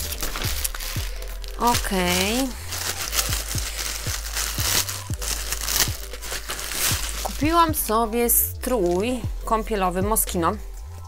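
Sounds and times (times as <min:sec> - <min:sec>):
plastic bag crinkling: 0:00.0 - 0:07.9, 0:08.6 - 0:09.1
background music with low beat: 0:00.0 - 0:11.0.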